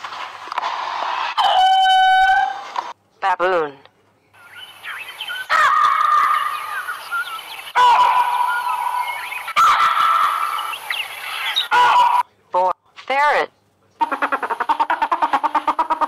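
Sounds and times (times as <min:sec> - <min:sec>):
baboon calls: 0:05.3 - 0:12.3, 0:14.0 - 0:16.0.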